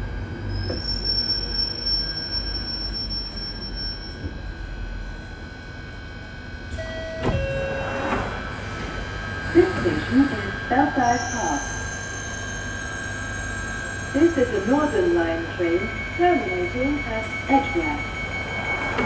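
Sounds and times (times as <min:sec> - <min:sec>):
stationary train humming: 0:00.0 - 0:19.0
train doors sliding open: 0:06.7 - 0:10.4, 0:18.3 - 0:19.0
recorded announcement voice: 0:09.5 - 0:11.7, 0:14.2 - 0:18.1.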